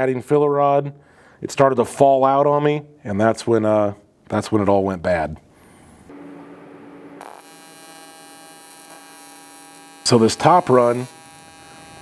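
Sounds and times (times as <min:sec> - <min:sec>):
welding arc buzzing: 0:06.1 - 0:12.0.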